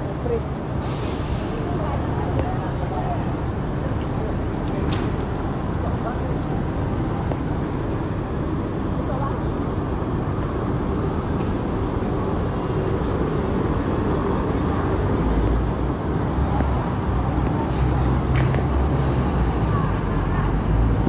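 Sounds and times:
traffic rumble: 0.0s - 21.0s.

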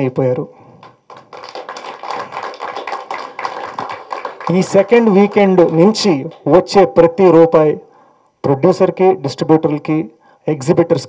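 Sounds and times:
audience applauding: 0.8s - 6.5s.

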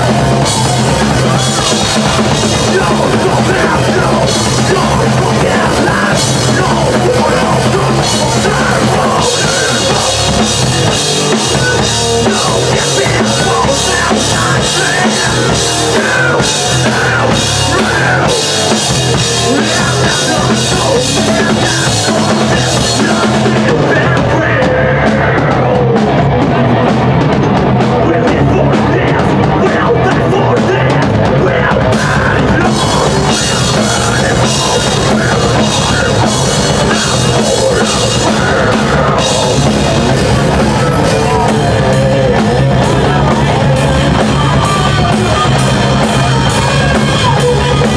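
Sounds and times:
distorted electric guitars: 0.0s - 47.9s
pounding drum kit: 0.0s - 47.9s.

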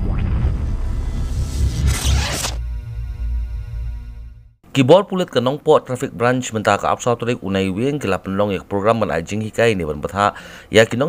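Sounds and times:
deep bass rumble: 0.0s - 4.6s
electronic intro music: 0.0s - 4.6s
whooshing noise: 0.0s - 4.6s
held synth chord: 2.4s - 4.6s.

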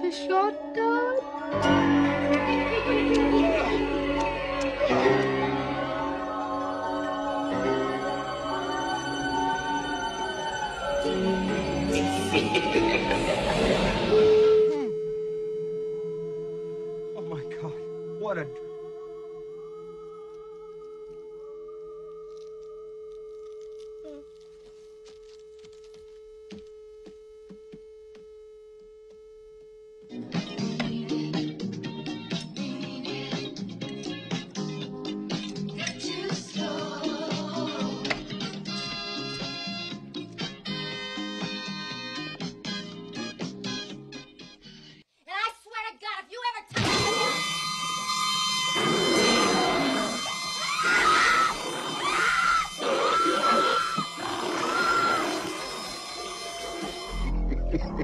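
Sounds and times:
high held screams: 46.7s - 57.3s
dense horror trailer music: 53.7s - 58.0s.

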